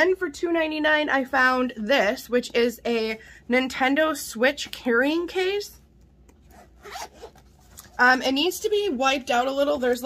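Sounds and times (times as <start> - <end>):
zipper on fabric case: 6.4 - 8.0.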